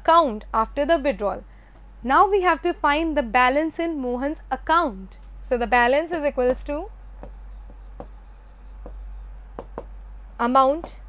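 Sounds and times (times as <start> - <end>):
steady low hum: 0.0 - 11.0
pen scratching on board: 6.4 - 9.9.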